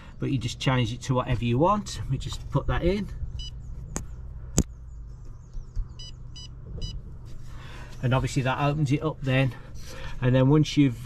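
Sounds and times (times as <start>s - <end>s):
heat pump low hum: 0.0s - 11.0s
control panel beeps: 3.4s - 3.6s, 6.0s - 7.0s.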